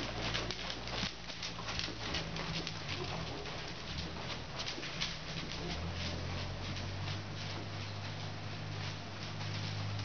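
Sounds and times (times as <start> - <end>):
horse hoofbeats on sand: 0.0 - 10.0
steady low hum: 0.0 - 10.0.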